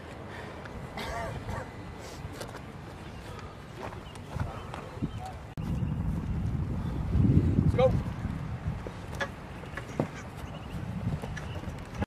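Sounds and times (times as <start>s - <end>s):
wind on microphone: 4.4s - 12.0s.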